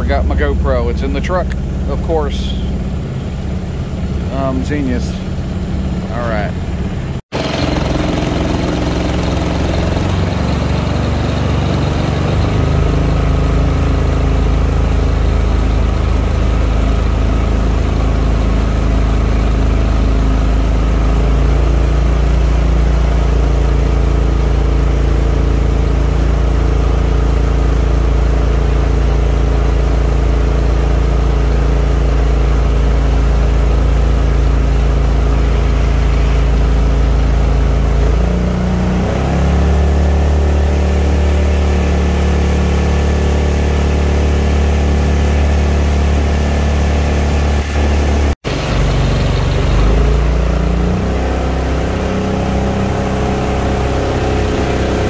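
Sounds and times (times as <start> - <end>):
small boat engine running: 0.0 - 55.0.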